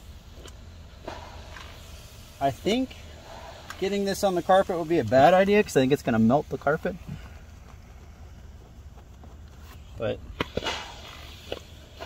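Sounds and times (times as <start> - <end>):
steam hissing: 0.0 - 8.8, 9.6 - 12.0
low steady rumble: 0.0 - 12.0.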